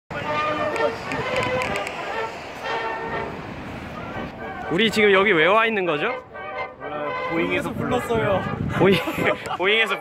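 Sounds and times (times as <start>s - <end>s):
indistinct voices: 0.1s - 5.0s
city street ambience: 0.1s - 10.0s.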